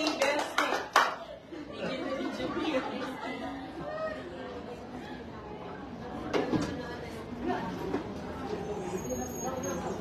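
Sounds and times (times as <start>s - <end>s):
small group applause: 0.0s - 1.4s
low indistinct chatter: 0.0s - 10.0s.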